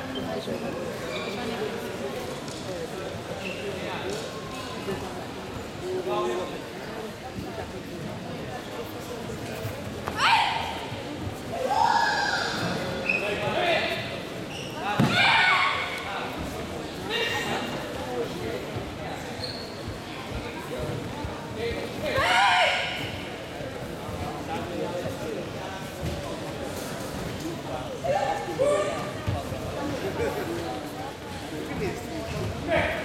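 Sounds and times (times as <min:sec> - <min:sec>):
loud shout: 0:10.2 - 0:10.8, 0:11.5 - 0:12.6, 0:15.0 - 0:16.0, 0:22.0 - 0:23.1.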